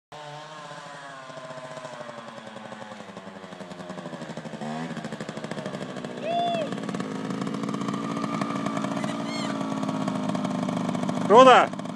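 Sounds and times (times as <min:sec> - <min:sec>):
motorcycle engine: 0:00.1 - 0:11.9
high pitched call: 0:08.9 - 0:09.6.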